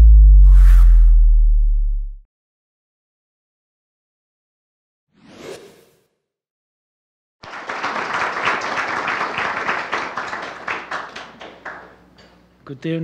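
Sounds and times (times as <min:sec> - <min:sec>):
whoosh: 0:00.0 - 0:02.2
audience applause: 0:07.4 - 0:12.0.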